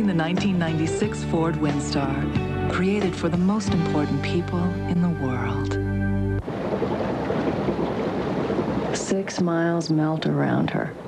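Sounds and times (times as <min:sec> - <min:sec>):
steady rain: 0:06.4 - 0:09.9.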